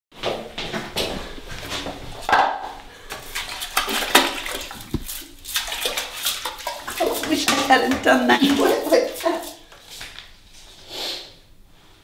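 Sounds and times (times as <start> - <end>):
toilet brush scrubbing: 3.0 - 11.3.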